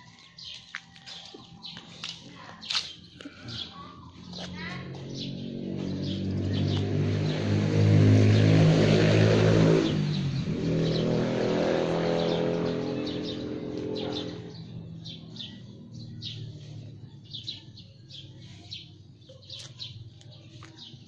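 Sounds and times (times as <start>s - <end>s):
birds chirping: 0.0s - 21.0s
vehicle engine passing by: 3.3s - 21.0s.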